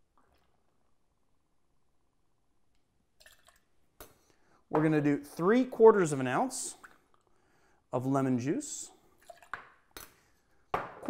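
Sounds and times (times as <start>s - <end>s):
faint liquid trickle into metal cup: 3.2s - 3.7s.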